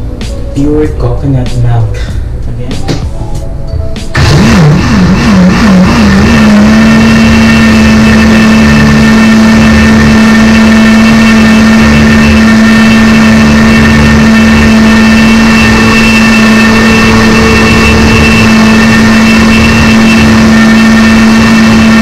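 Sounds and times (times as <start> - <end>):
electric blender running: 4.2 - 22.0.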